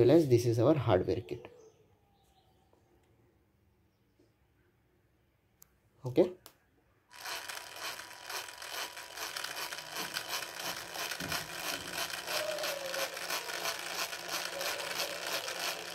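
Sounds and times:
small geared motor whirring: 0:07.1 - 0:15.9.

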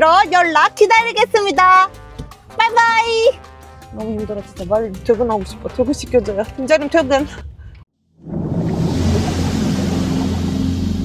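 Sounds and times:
ambient music: 0:01.0 - 0:07.3, 0:08.5 - 0:11.0
deep drone with low tones: 0:08.3 - 0:11.0.

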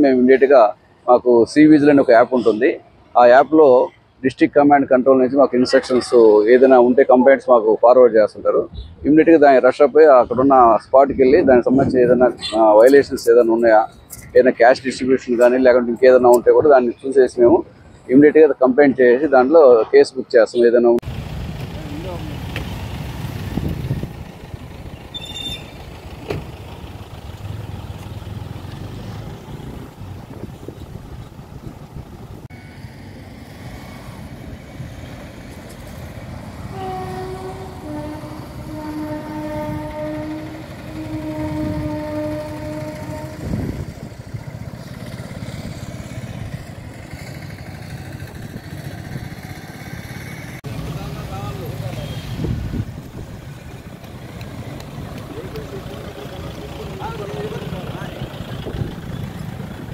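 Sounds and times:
passing vehicles: 0:00.0 - 0:59.9
vehicle horn blasts: 0:36.7 - 0:44.0.

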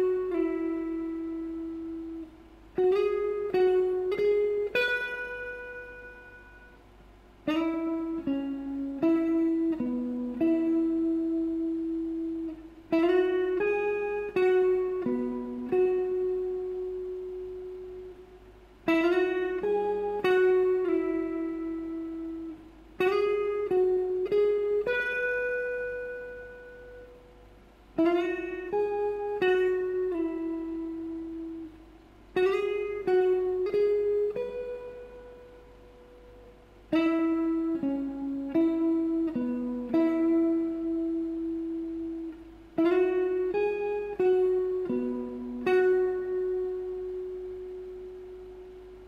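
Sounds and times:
clean electric guitar melody: 0:00.0 - 0:49.0.

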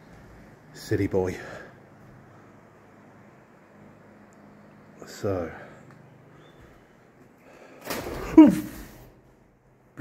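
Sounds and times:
birds taking flight: 0:07.5 - 0:09.1.

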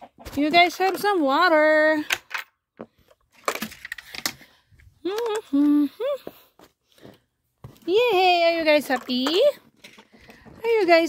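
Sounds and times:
woman humming: 0:05.0 - 0:06.4.

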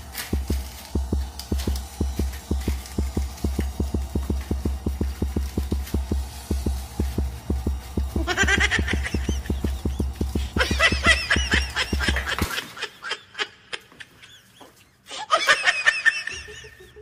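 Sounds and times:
tense music with pulsing beat: 0:00.0 - 0:12.6
comic high wavering calls: 0:00.0 - 0:12.9.

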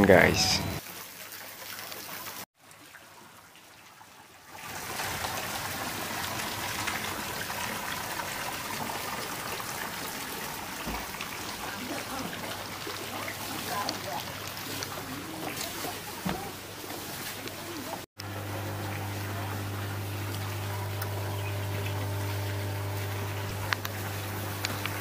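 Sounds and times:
water trickling: 0:00.1 - 0:25.0.

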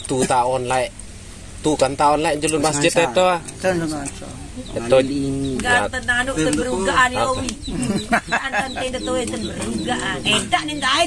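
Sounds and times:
people talking: 0:00.0 - 0:00.9, 0:01.7 - 0:11.0.

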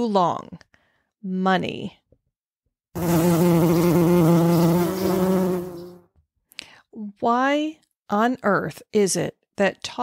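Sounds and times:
bee buzzing: 0:03.0 - 0:06.1.

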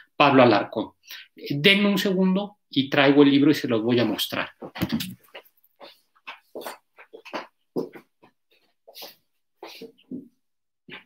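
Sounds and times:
footsteps: 0:04.0 - 0:11.0.

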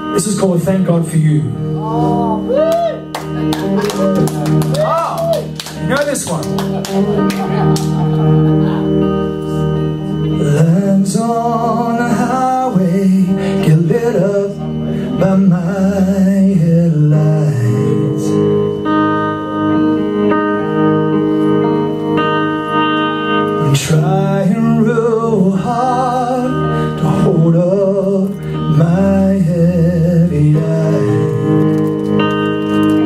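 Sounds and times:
electric guitar strumming chords: 0:00.0 - 0:33.0.

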